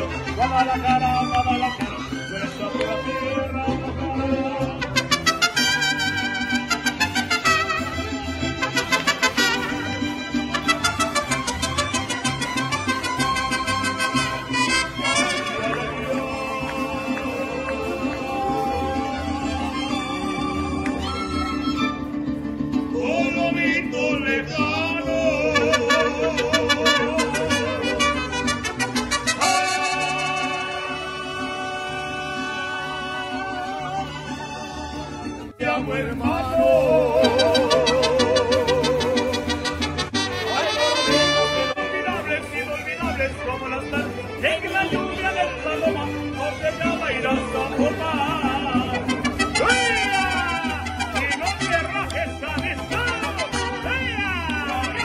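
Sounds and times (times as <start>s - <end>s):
mariachi band playing: 0.0s - 55.0s
strummed guitars: 0.0s - 55.0s
violins: 0.0s - 55.0s.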